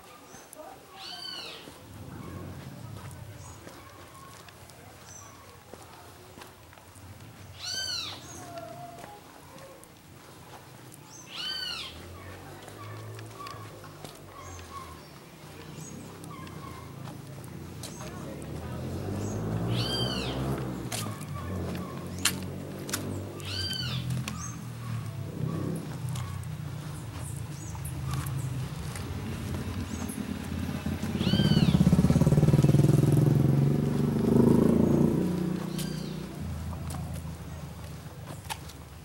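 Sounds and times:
footsteps on cobblestones: 0.0 - 39.0
animal calling: 7.5 - 9.9, 11.1 - 15.0, 15.8 - 17.1, 19.1 - 22.4, 23.3 - 29.0, 31.1 - 32.6
rising and falling animal call: 19.3 - 20.6, 23.4 - 26.4, 31.1 - 33.2.

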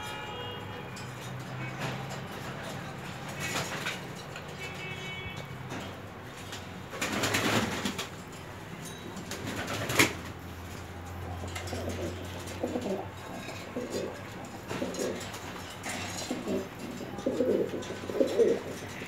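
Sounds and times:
pigeons cooing: 11.0 - 19.0.

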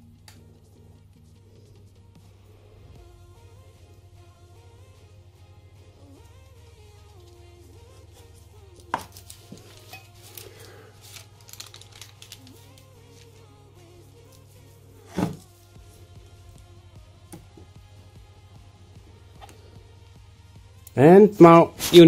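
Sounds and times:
soft background music: 0.0 - 22.0
baking paper rustling: 8.2 - 13.5
iron thudding down on paper: 15.1 - 15.4.

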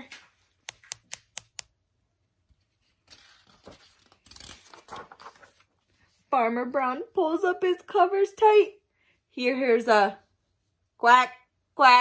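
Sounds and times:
book page rustling: 2.5 - 6.3.

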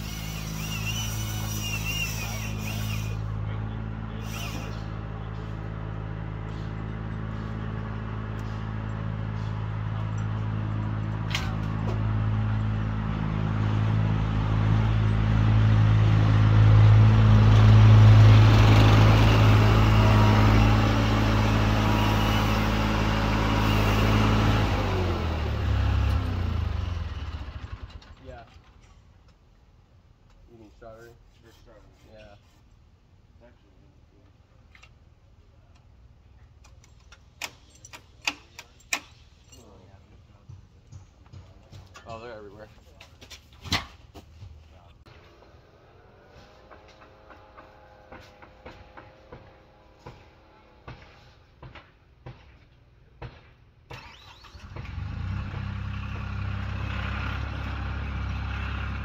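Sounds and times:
small loader engine running: 0.0 - 28.2, 53.9 - 59.0.

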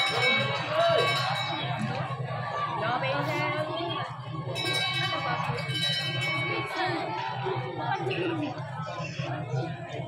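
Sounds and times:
metal bell ringing: 0.0 - 1.9, 4.6 - 6.9
crowd chatter: 0.0 - 10.0.

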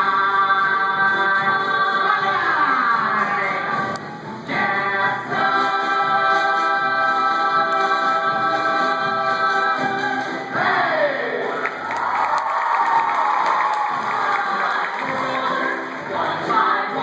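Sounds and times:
audience cheering and applauding: 11.4 - 16.0.

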